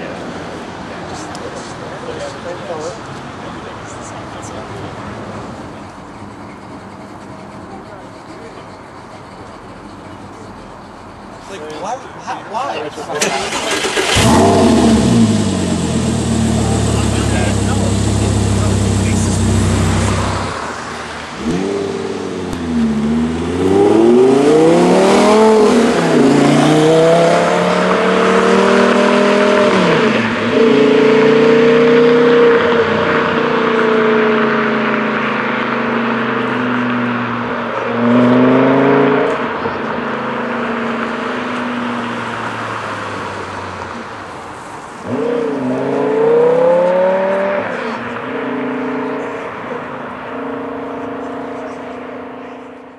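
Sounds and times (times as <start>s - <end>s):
car engine idling high: 13.1s - 23.6s
car accelerating through gears: 13.2s - 44.1s, 45.0s - 52.9s.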